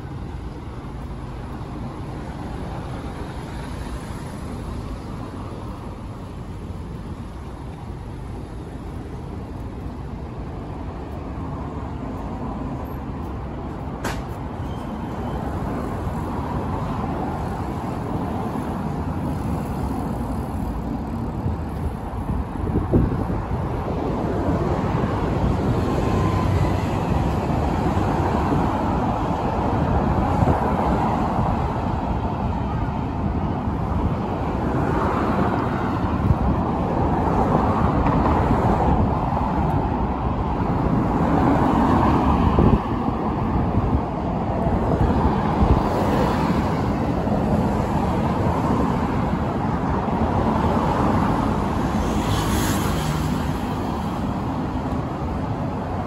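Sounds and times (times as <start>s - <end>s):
cars passing on road: 0.0s - 56.0s.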